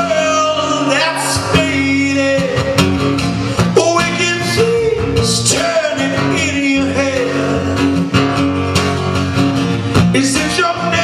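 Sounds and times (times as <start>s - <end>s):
man singing: 0.0s - 8.5s, 10.0s - 11.0s
strummed acoustic guitar: 0.0s - 11.0s.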